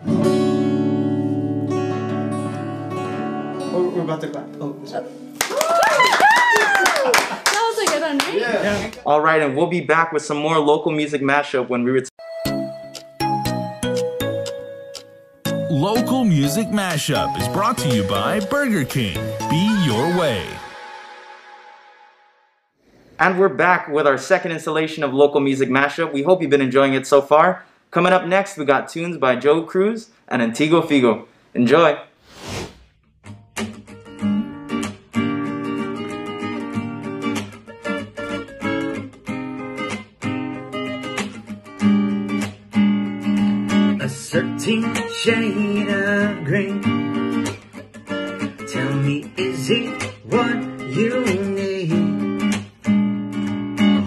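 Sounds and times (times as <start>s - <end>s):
acoustic guitar playing: 0.0s - 5.4s, 12.2s - 22.8s, 33.2s - 54.0s
person cheering: 5.4s - 7.5s, 15.7s - 20.8s
people clapping: 5.4s - 8.5s.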